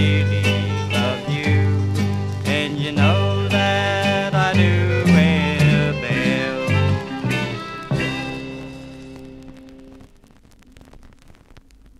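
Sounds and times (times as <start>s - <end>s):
vinyl crackle and hiss: 0.0s - 11.9s.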